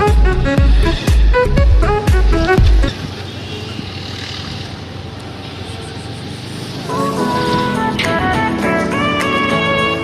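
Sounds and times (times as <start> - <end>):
music with heavy beat: 0.0 - 2.9
street and traffic noise: 0.0 - 10.0.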